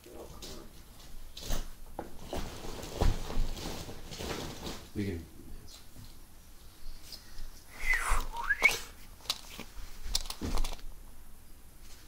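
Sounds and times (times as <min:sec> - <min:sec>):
sliding high whistle: 0:07.7 - 0:08.9.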